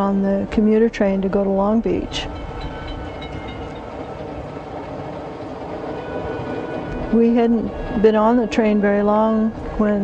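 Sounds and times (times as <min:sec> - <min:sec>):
train rumble from inside carriage: 0:00.0 - 0:10.0.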